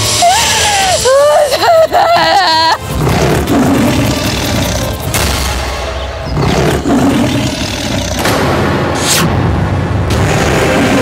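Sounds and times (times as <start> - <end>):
tiger roaring: 2.8 - 8.4, 10.1 - 11.0.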